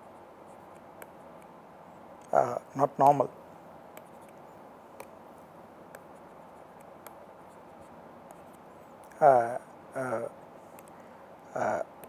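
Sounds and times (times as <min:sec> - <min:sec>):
stylus scratching on tablet: 0:00.0 - 0:01.4, 0:03.9 - 0:04.6, 0:06.0 - 0:09.0
low hiss: 0:00.0 - 0:12.0.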